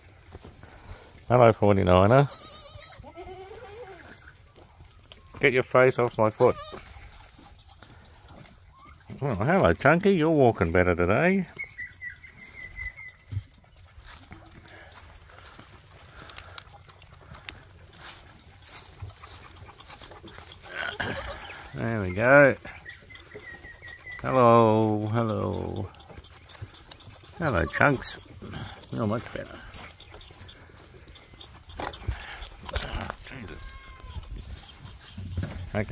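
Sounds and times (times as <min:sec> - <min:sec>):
goat kids mouth sounds: 0:00.0 - 0:35.9
faint clicks and rustling: 0:12.6 - 0:22.2.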